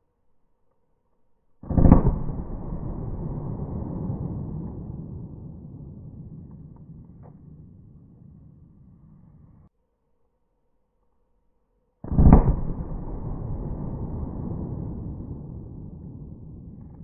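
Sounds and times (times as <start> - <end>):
slowed pistol shot boom: 1.6 - 9.2, 12.1 - 17.0.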